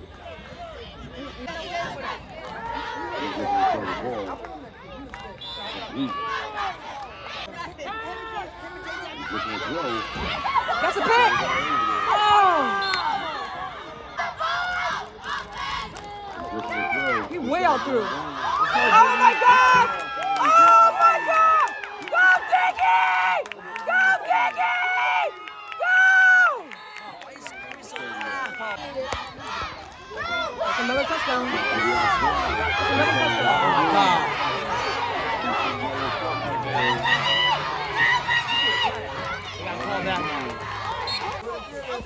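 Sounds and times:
crowd cheering: 0:00.0 - 0:42.0.

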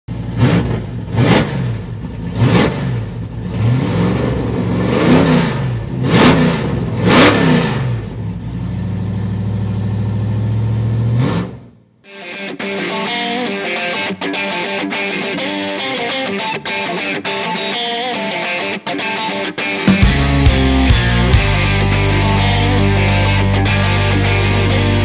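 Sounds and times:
car engine revving: 0:00.1 - 0:11.9.

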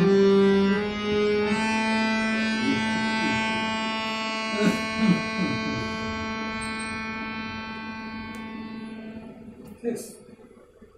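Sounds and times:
harmonium holding a note: 0:00.0 - 0:10.2.

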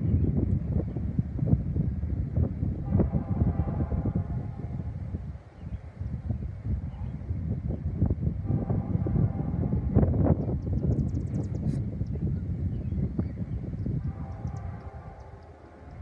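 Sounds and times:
low rumble of a train: 0:00.0 - 0:16.0
wind buffeting the microphone: 0:00.0 - 0:16.0.

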